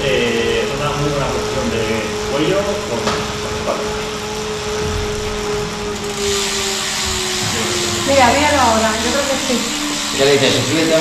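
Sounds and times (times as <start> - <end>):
bike trainer whirring with whine: 0.0 - 11.0.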